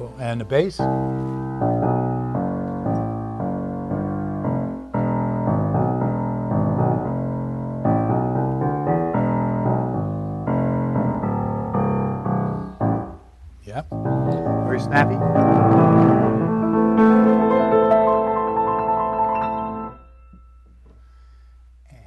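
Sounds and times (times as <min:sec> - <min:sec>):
low piano chords: 0:00.0 - 0:20.8.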